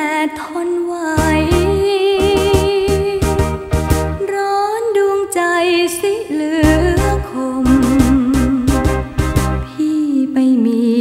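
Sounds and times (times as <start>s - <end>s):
bass and drum beat: 1.2s - 4.2s, 6.6s - 9.6s
wavering melody line: 1.2s - 4.2s, 6.6s - 9.6s.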